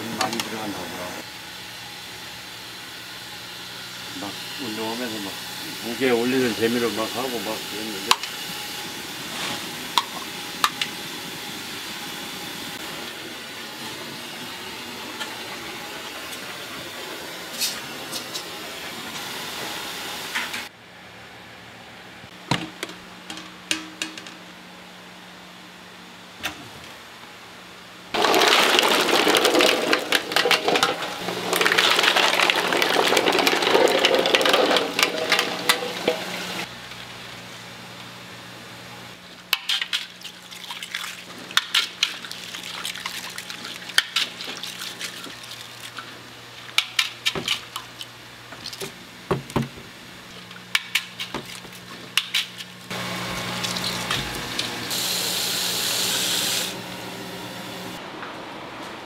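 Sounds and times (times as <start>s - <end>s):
water boiling hard: 3.8s - 20.4s, 28.1s - 36.7s, 39.6s - 58.0s
eggs clinking and splashing: 28.2s - 36.6s
water running into a pot: 28.2s - 36.7s, 39.6s - 48.0s, 52.9s - 56.8s.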